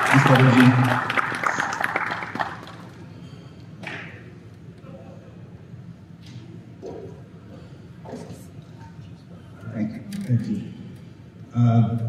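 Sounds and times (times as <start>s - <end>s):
audience applause: 0.0s - 3.0s.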